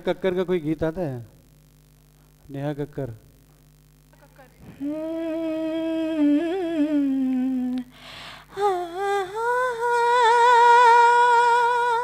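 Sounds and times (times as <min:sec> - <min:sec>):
woman humming: 0:04.6 - 0:12.0
breath: 0:07.9 - 0:08.5.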